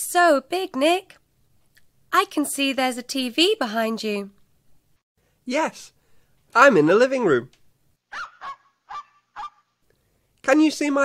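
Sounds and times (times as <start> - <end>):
short animal calls: 8.1 - 9.8.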